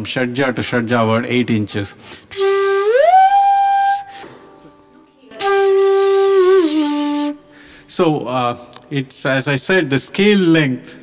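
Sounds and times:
slide flute gliding notes: 2.3 - 7.6.

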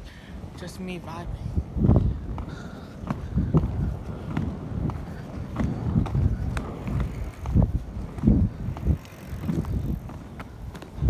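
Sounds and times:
roller skate wheels on asphalt: 0.0 - 11.0.

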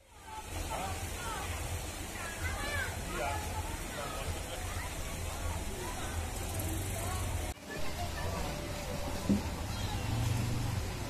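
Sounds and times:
people calling and chattering: 0.0 - 11.0.

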